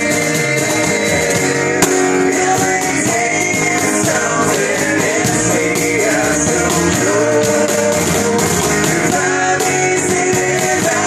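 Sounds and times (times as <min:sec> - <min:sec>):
acoustic rock band playing: 0:00.0 - 0:11.0
sharp percussive hit: 0:01.8 - 0:02.3.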